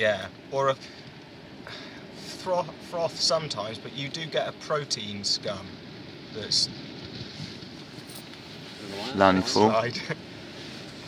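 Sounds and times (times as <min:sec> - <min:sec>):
wind noise on microphone: 0:06.7 - 0:08.1.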